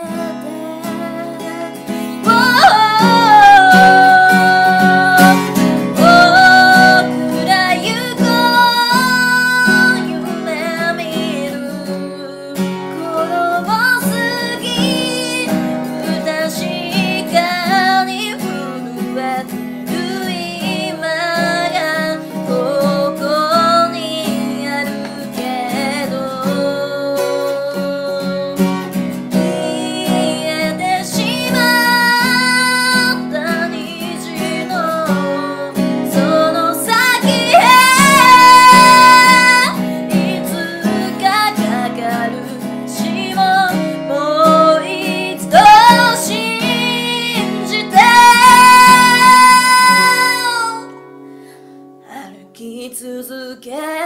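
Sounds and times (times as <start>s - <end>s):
woman singing slow ballad: 0.0s - 51.1s, 52.0s - 54.0s
strummed acoustic guitar: 0.0s - 52.9s.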